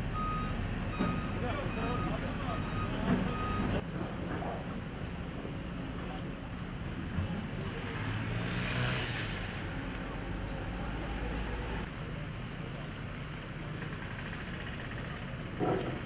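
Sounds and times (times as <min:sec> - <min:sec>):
heavy machinery engine rumbling: 0:00.0 - 0:16.0
outdoor noise: 0:00.0 - 0:16.0.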